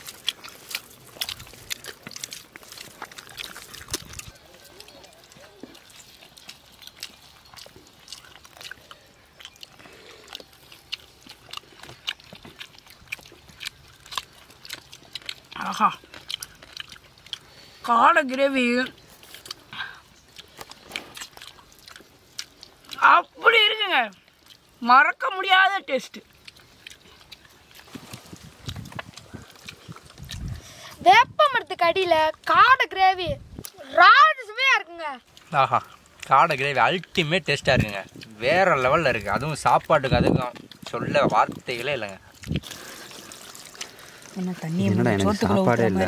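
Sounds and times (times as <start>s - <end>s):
person chewing food: 0.0s - 23.4s, 24.1s - 24.8s, 26.0s - 31.0s, 35.2s - 46.0s.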